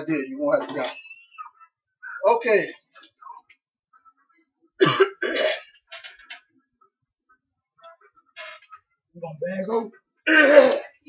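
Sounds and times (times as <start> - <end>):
man coughing: 4.8 - 5.7.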